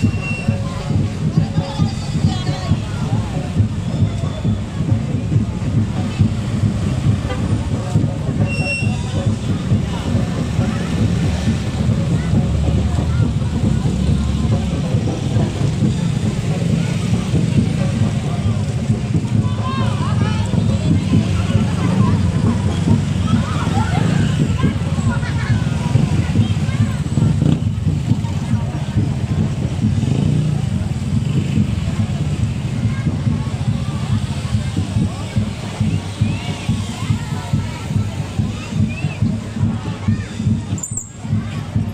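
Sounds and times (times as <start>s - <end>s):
motorcycle engines running: 0.0s - 41.9s
people's voices: 0.0s - 41.9s.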